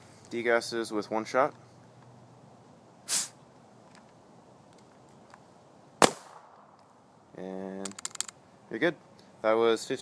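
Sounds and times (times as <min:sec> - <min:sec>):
hissing puff of gas: 0:03.1 - 0:03.4
paintball marker shot: 0:06.0 - 0:06.8.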